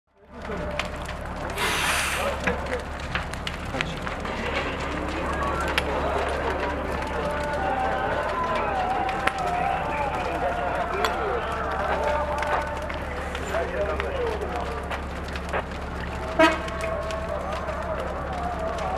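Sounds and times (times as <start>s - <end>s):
fire crackling and popping: 0.1s - 18.9s
low fire rumble: 0.1s - 18.9s
people's voices: 0.1s - 18.9s
loud hiss: 1.6s - 2.4s.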